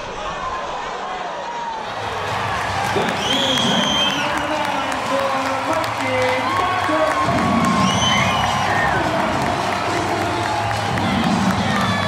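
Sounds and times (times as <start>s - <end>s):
crowd cheering and clapping: 0.0s - 12.0s
people whooping: 0.2s - 12.0s
music over stadium speakers: 1.9s - 12.0s.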